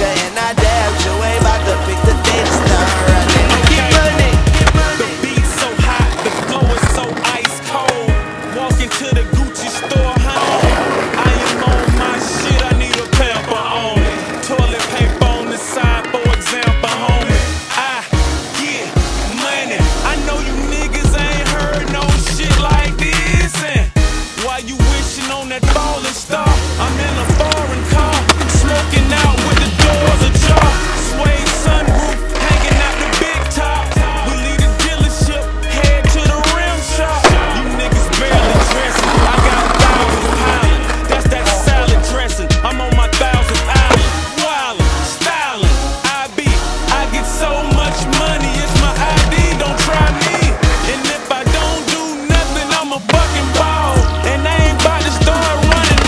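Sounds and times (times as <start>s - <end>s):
skateboard clacks: 0.0s - 23.8s, 24.4s - 56.0s
hip-hop music with deep bass: 0.0s - 56.0s
skateboard wheels rolling on pavement: 0.0s - 56.0s.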